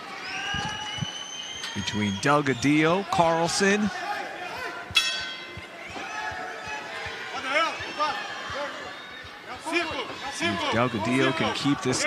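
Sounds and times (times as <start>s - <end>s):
arena voices: 2.6s - 12.0s
boxing bell ringing: 4.9s - 5.7s.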